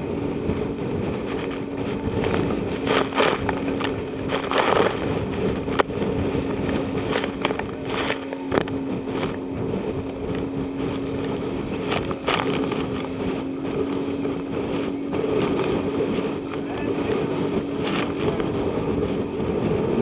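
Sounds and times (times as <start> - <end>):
boat engine hum: 0.0 - 20.0
hull slapping waves: 0.0 - 20.0
rushing wind: 0.0 - 20.0.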